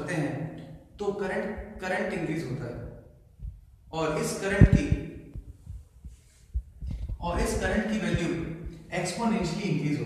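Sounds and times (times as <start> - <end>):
soft low thumps and knocks: 3.4 - 3.7, 4.5 - 8.9.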